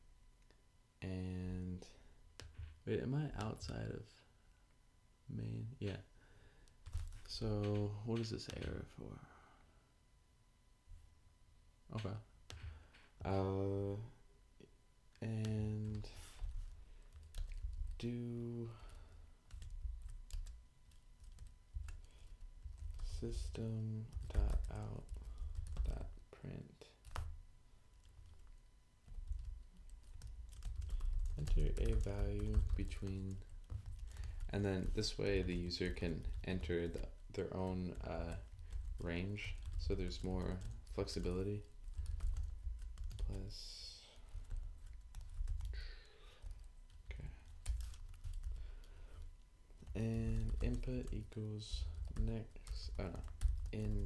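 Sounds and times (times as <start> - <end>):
computer keyboard typing: 6.8 - 8.8, 15.4 - 18.0, 18.8 - 26.1, 27.0 - 27.4, 28.0 - 43.6, 44.2 - 54.0.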